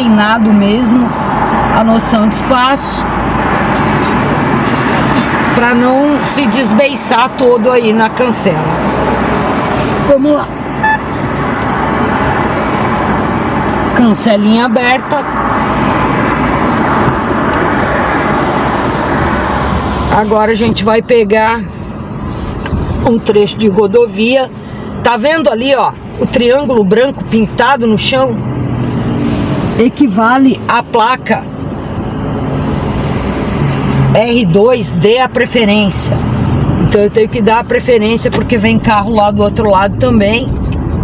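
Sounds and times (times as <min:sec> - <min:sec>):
car engine hum: 0:00.0 - 0:41.0
road and tyre noise: 0:00.0 - 0:41.0.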